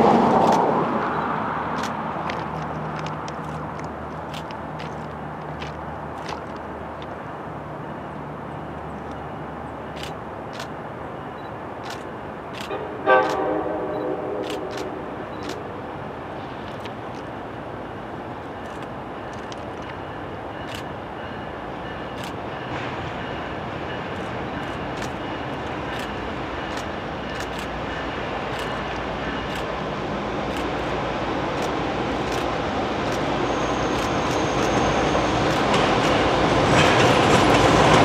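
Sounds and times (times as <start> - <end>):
locomotive engine and rolling train: 0.0 - 38.0
locomotive air horn: 12.7 - 15.2.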